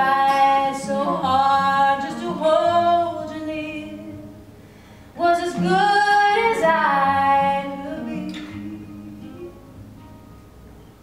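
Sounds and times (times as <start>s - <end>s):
women singing in harmony: 0.0s - 4.3s, 5.2s - 9.4s.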